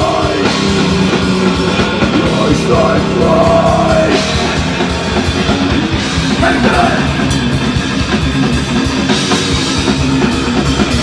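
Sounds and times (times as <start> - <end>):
bass guitar: 0.0 - 11.0
drum kit with cymbals: 0.0 - 11.0
electric guitar: 0.0 - 11.0.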